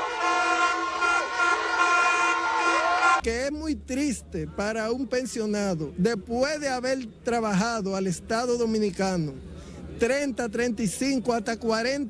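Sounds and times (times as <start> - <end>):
plastic stadium horns blowing: 0.0 - 3.2.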